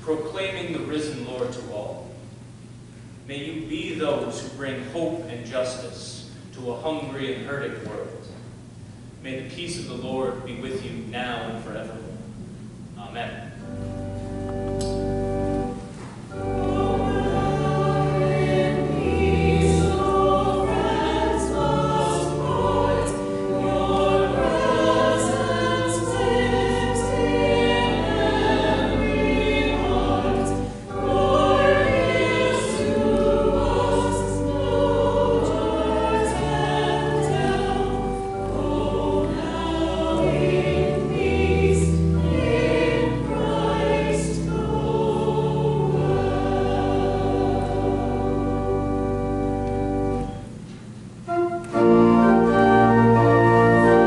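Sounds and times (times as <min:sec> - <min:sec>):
organ playing low notes: 0:09.4 - 0:54.0
church choir singing: 0:13.6 - 0:50.5, 0:51.3 - 0:54.0.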